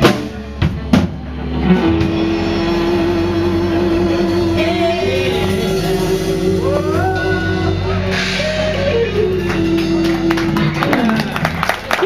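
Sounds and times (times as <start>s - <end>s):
blues-rock band playing: 0.0s - 12.0s.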